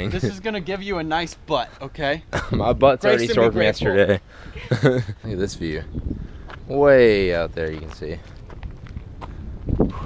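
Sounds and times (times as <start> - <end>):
footsteps on paved road: 6.4 - 10.0.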